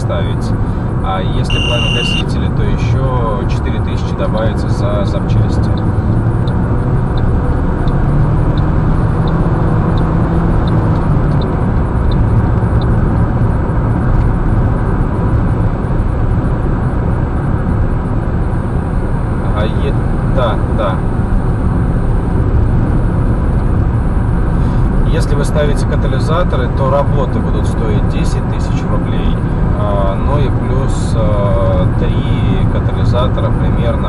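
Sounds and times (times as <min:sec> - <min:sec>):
car road and engine rumble: 0:00.0 - 0:34.0.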